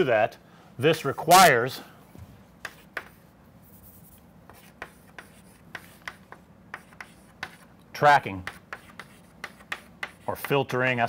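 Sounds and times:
chalk writing on chalkboard: 0:02.6 - 0:10.8.

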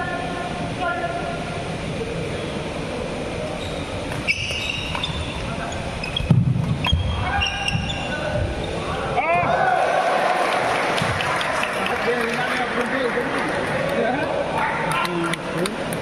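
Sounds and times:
shoes squeaking on court: 0:03.6 - 0:08.8
crowd chatter: 0:07.1 - 0:16.0.

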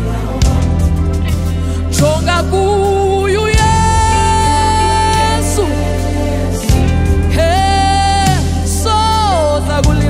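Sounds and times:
band bass: 0:00.0 - 0:10.0
woman singing: 0:02.0 - 0:10.0.

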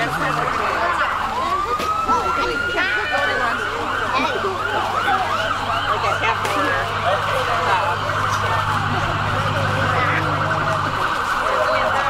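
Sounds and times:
people's voices: 0:00.0 - 0:12.0
siren wailing and warbling: 0:00.0 - 0:12.0.

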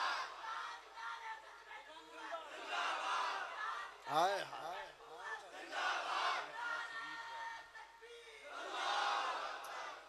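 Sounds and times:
crowd of men shouting: 0:02.0 - 0:04.1, 0:05.2 - 0:10.0.

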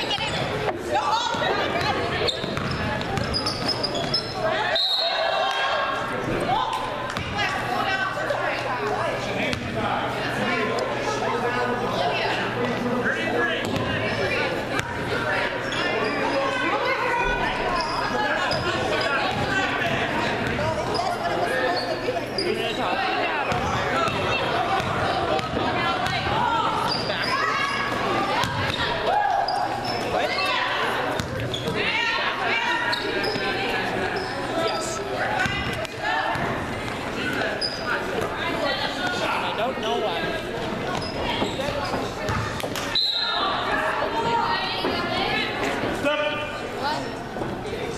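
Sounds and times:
people talking: 0:00.0 - 0:47.9.

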